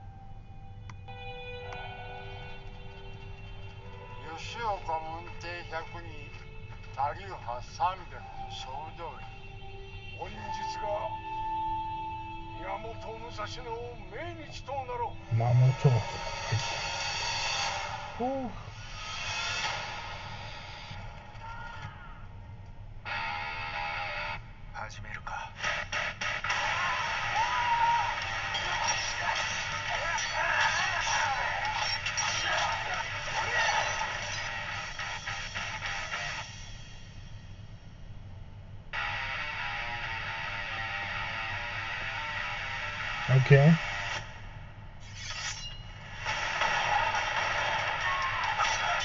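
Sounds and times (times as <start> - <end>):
music: 0.0 - 24.5, 25.2 - 38.2, 38.9 - 49.0
voices over music: 4.1 - 6.3, 12.5 - 16.7.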